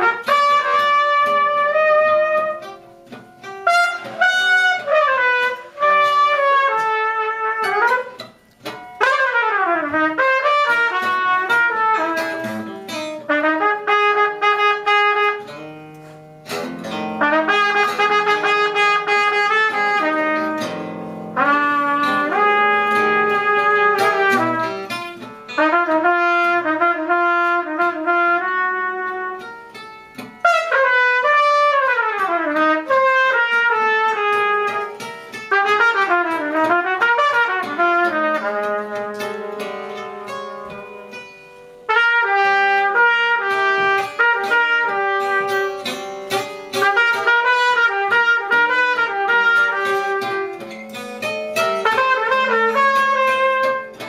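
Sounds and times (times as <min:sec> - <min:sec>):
trumpet gliding notes: 0:00.0 - 0:41.2, 0:41.8 - 0:54.0
guitar plucked notes: 0:00.0 - 0:54.0.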